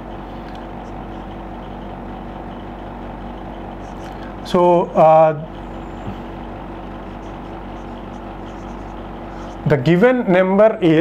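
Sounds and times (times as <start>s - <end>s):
room hum and hiss: 0.0s - 11.0s
marker writing on whiteboard: 3.8s - 4.4s, 5.6s - 9.8s.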